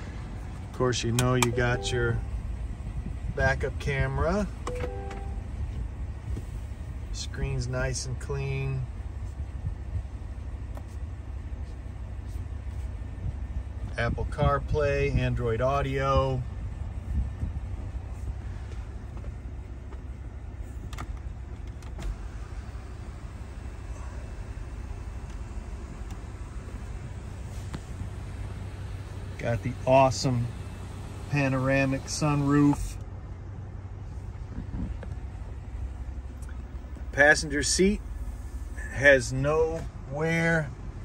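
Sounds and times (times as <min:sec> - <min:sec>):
low rumble in car cabin: 0:00.0 - 0:41.0.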